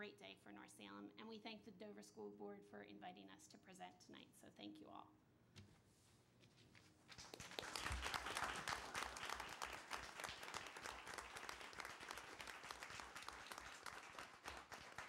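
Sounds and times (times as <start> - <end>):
people applauding: 7.1 - 15.0.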